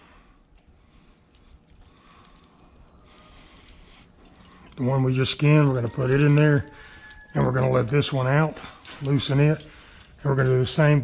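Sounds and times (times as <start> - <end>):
metal chain and hook clinking: 0.1 - 11.0.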